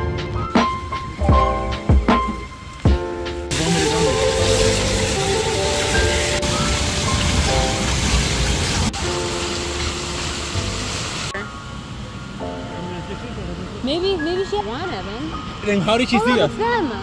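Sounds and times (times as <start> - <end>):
piano music: 0.0 - 17.0
fountain water splashing: 3.5 - 11.4.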